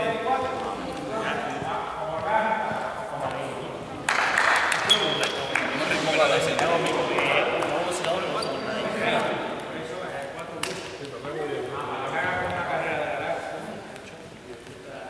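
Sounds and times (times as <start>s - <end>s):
people talking in echoing hall: 0.0s - 15.0s.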